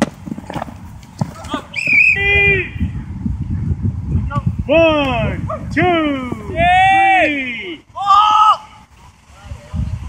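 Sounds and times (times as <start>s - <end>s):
high-pitched shout: 8.0s - 8.8s.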